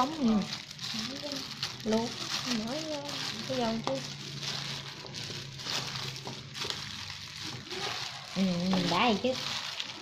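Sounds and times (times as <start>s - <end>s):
glove and leaves rustling: 0.1s - 10.0s.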